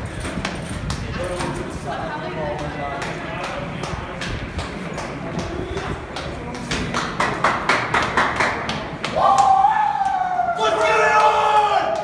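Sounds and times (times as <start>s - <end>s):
people clapping: 2.6s - 12.0s
long drawn-out shout: 9.1s - 12.0s.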